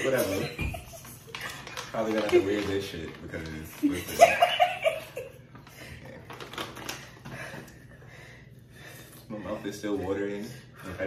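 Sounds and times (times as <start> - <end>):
paper slip rustling and crinkling: 0.4 - 5.0.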